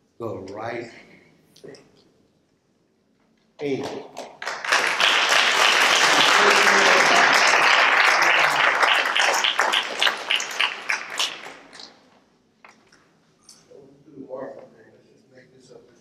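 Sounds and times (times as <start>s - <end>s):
congregation applauding: 3.6s - 12.1s.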